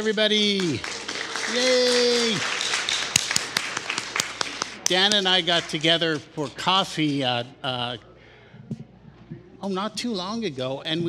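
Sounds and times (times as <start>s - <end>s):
audience hand clapping: 0.0s - 7.2s.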